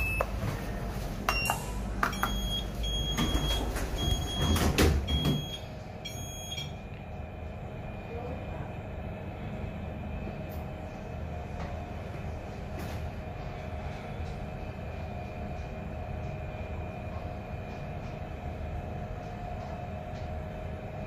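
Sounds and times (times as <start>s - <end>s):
lift door buzzer beeping: 2.1s - 6.8s.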